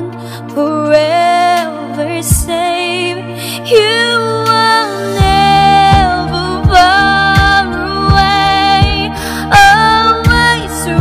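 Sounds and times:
backing track with bass and drums: 0.0 - 3.0, 3.8 - 11.0
woman singing a slow ballad: 0.0 - 11.0.

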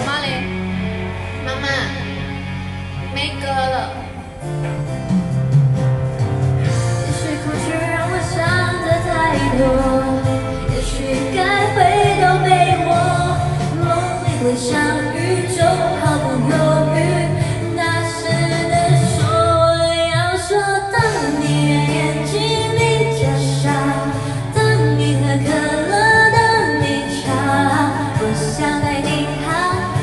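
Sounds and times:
backing track: 0.0 - 30.0
woman singing pop song: 6.7 - 30.0.

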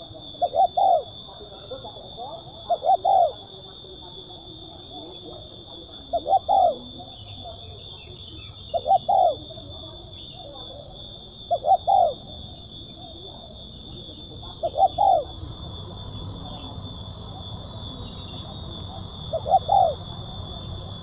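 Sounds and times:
dove cooing: 0.0 - 21.0.

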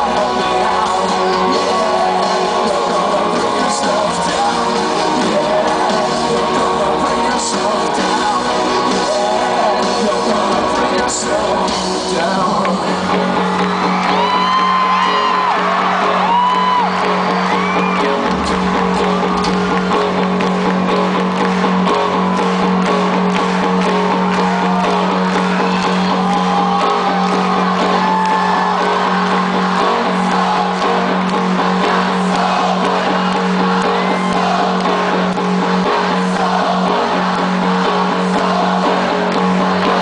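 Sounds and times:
crowd whooping and cheering: 0.0 - 40.0
rock band playing live: 0.0 - 40.0.

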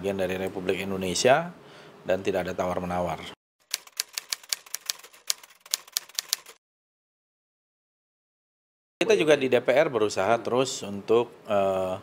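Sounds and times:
keystroke clicks: 3.7 - 6.6.

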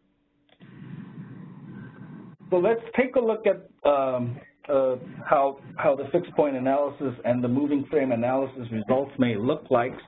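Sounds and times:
low rushing microphone noise: 0.6 - 9.1.

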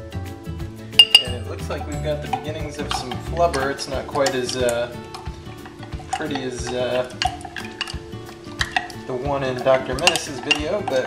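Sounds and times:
metal spoon stirring thick mixture: 0.9 - 11.0
spoon clinking against glass: 0.9 - 11.0.

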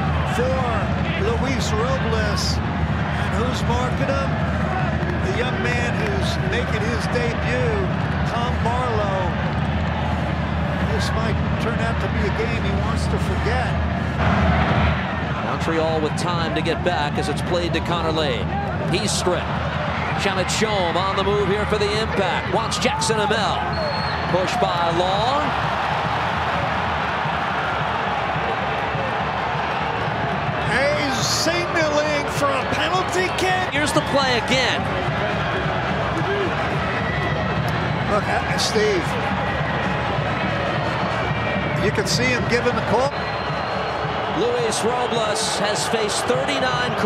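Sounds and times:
stadium crowd noise: 0.0 - 47.0
commentator speaking: 44.4 - 47.0.

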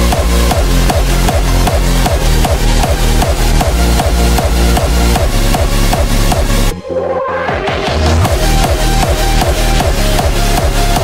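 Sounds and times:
electronic dance music: 0.0 - 11.0
heavy bass beat: 0.0 - 11.0.

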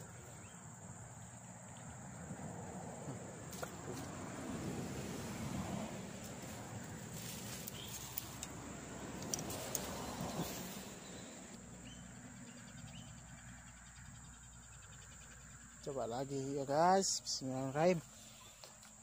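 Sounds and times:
insects droning: 0.0 - 19.0
insect pulsing chirp: 4.9 - 19.0.

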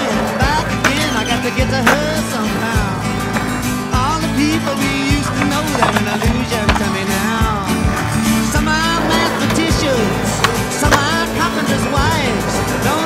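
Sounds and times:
music: 0.0 - 13.0
skateboard clacks: 0.0 - 13.0
skateboard grinding on concrete: 0.0 - 13.0.

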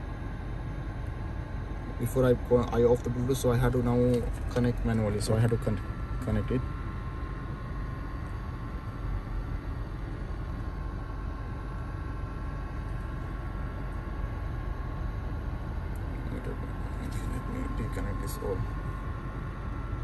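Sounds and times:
air conditioning fan: 0.0 - 20.0
car engine idling: 0.0 - 20.0.

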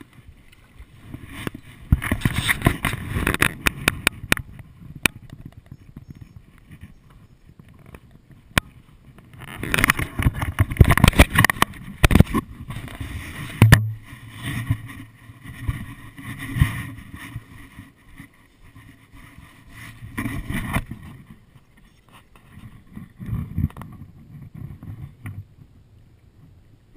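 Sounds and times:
water splashing around paddleboard: 0.0 - 25.5.

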